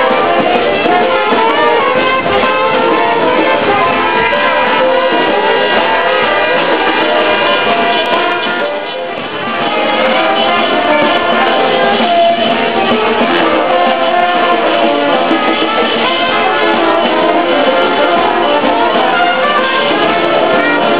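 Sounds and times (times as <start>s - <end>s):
guitar: 0.0s - 20.9s
live band playing: 0.0s - 20.9s
trumpet: 0.0s - 20.9s.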